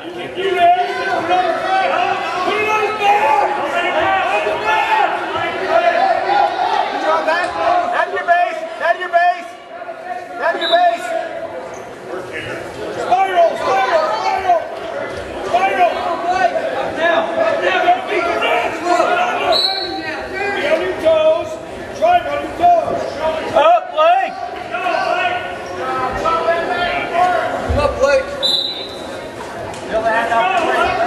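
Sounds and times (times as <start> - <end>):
coaches and spectators shouting: 0.0 - 31.0.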